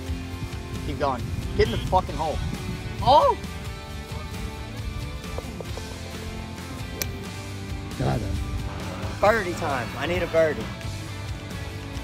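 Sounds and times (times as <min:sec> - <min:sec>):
background music with held notes: 0:00.0 - 0:12.0
sharp click: 0:07.0 - 0:07.2.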